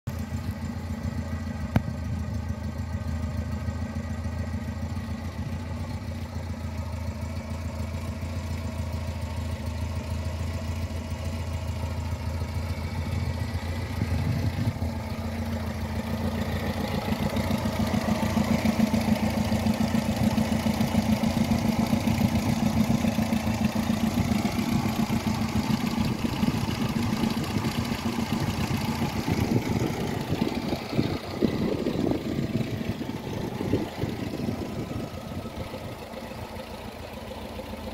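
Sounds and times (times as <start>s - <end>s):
car engine idling: 0.1s - 37.9s.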